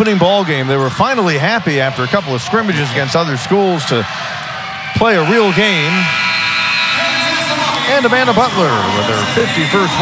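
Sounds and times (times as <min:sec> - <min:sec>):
crowd noise: 0:00.0 - 0:10.0
arena horn steady tone: 0:05.0 - 0:10.0.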